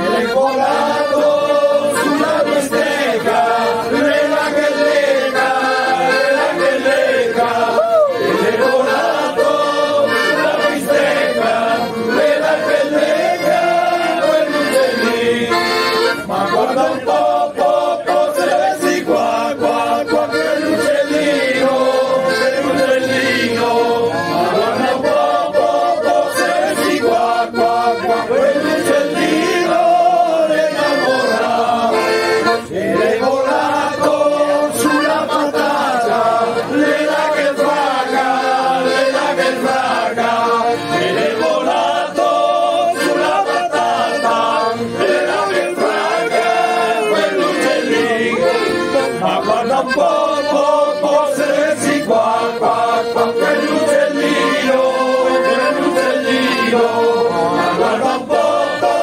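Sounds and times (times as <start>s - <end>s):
men singing in chorus: 0.0s - 59.0s
piano accordions: 0.0s - 59.0s.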